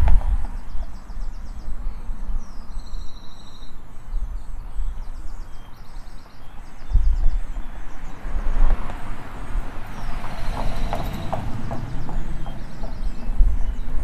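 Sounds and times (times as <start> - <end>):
rhythmic clopping knocks: 10.1 - 13.8.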